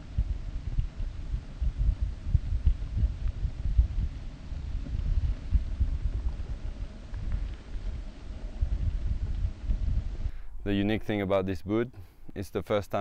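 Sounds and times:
wind buffeting microphone: 0:00.0 - 0:11.2.

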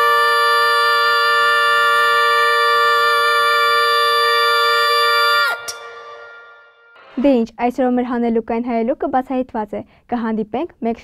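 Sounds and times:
woman singing a long note: 0:00.0 - 0:07.2.

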